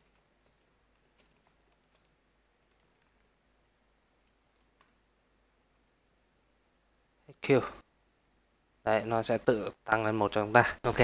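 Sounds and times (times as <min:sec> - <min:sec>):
keyboard typing clicks: 0:00.0 - 0:03.3, 0:04.2 - 0:05.0.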